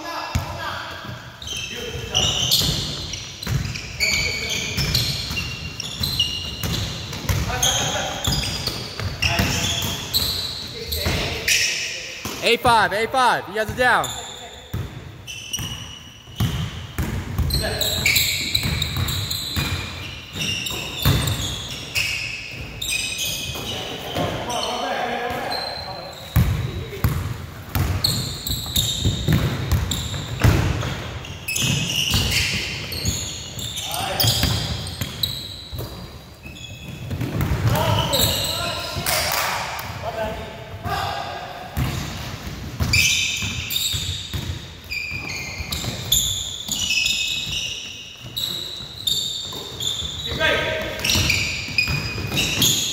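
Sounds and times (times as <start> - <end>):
sneakers squeaking: 0.2 - 40.1, 41.6 - 52.9
players' voices: 9.2 - 14.7
basketball bouncing on hardwood floor: 26.4 - 28.2, 28.8 - 30.9.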